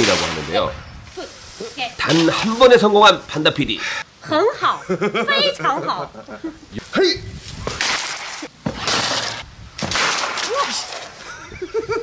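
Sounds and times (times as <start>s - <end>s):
bamboo pole cracking and tearing: 7.6s - 11.2s.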